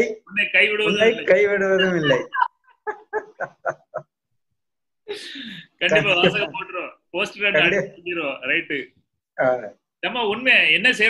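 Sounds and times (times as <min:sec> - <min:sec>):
man laughing: 0:01.0 - 0:04.1, 0:05.9 - 0:06.7.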